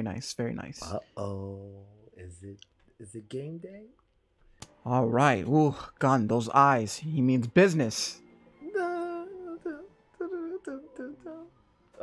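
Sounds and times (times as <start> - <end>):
person humming a long note: 8.6 - 11.5.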